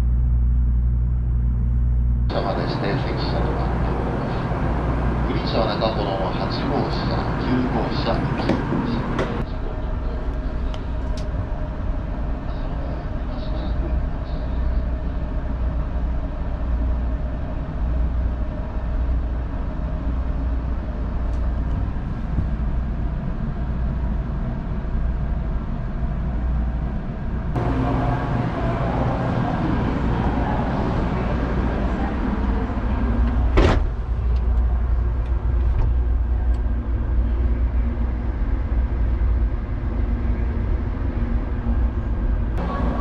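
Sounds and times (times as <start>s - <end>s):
train interior rumble and hum: 0.0s - 43.0s.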